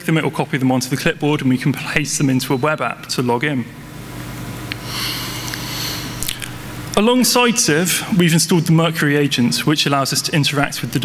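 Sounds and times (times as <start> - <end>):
sound system hum and hiss: 0.0 - 11.0.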